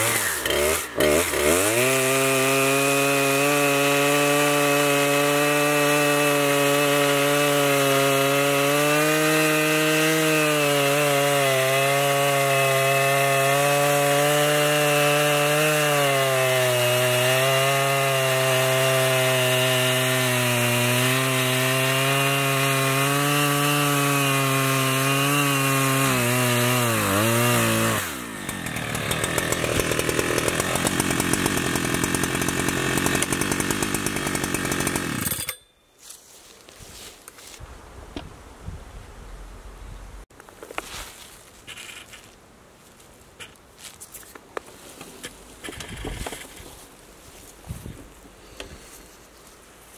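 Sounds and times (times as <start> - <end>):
chainsaw engine rough idle: 0.0 - 1.9, 28.0 - 35.5
chainsaw cutting log: 0.0 - 35.6, 41.6 - 42.3, 44.6 - 46.9.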